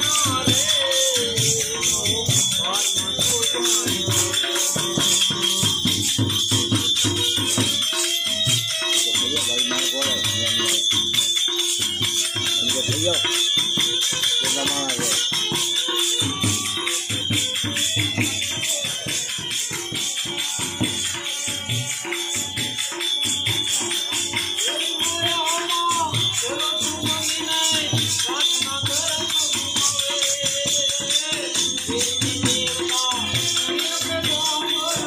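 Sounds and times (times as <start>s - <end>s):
bright jingling percussion: 0.0s - 35.0s
hand drum beating fast rhythm: 0.0s - 35.0s.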